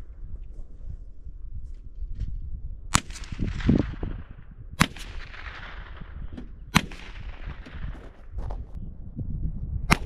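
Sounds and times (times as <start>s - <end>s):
rifle shots with echo: 2.9s - 8.4s.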